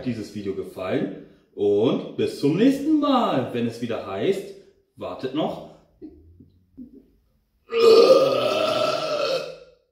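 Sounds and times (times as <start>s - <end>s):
man burping: 7.6s - 9.8s.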